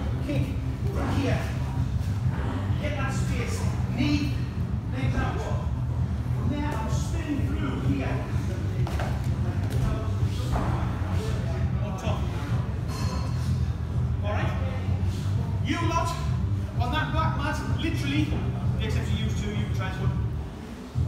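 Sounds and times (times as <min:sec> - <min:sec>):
people talking indistinctly: 0:00.0 - 0:21.0
steady low hum: 0:00.0 - 0:21.0.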